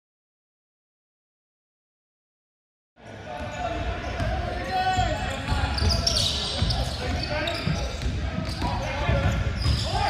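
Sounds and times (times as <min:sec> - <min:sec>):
indistinct voices in large hall: 0:03.0 - 0:10.0.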